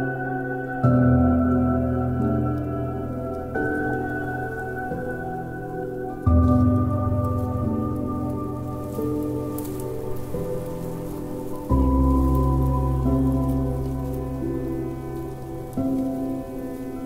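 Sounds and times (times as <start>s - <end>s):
slow sad piano chords: 0.0s - 17.0s
steady rain: 0.0s - 17.0s.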